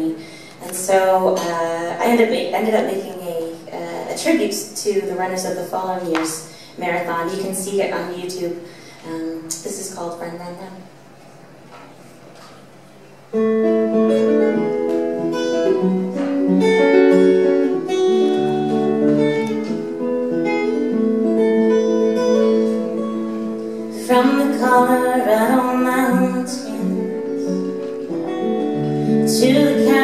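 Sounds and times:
acoustic guitar picking: 13.3 - 30.0
woman singing: 23.9 - 27.6, 29.1 - 30.0.

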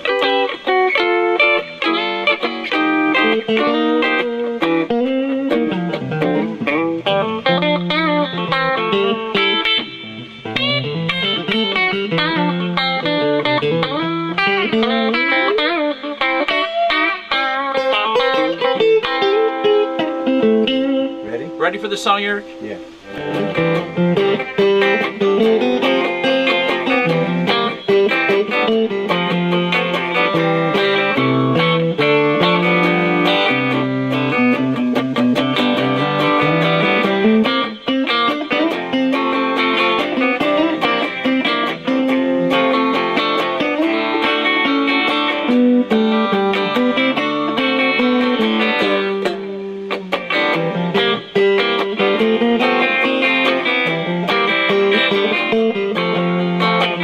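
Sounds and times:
two electric guitars playing: 0.0 - 57.0.

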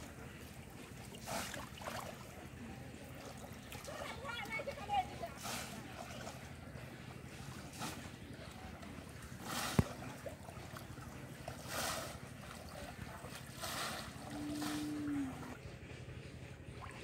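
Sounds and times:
fish traps splashing in water: 0.0 - 15.6.

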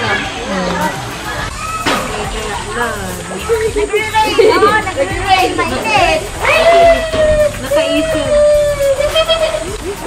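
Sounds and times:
children calling and chattering: 0.0 - 10.0.

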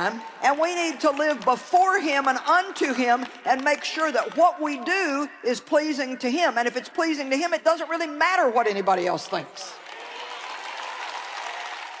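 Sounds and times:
audience applauding: 9.8 - 12.0.

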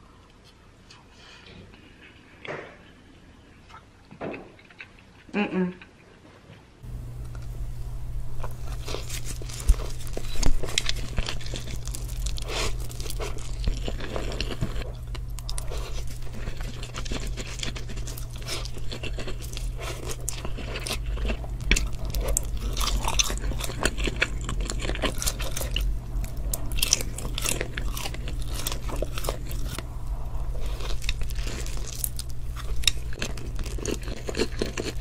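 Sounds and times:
steady low hum: 6.8 - 35.0
slurping and chewing noodles: 8.4 - 35.0.

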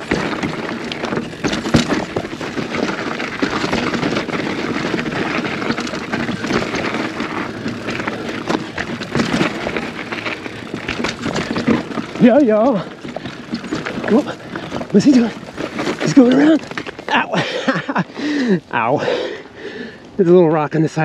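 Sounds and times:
bike knocking and rattling: 0.0 - 19.3
bike tyres crunching over gravel: 0.0 - 21.0.

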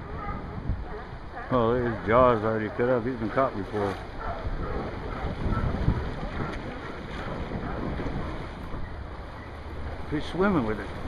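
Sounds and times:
sea waves washing: 0.0 - 11.0
wind buffeting microphone: 0.0 - 11.0.

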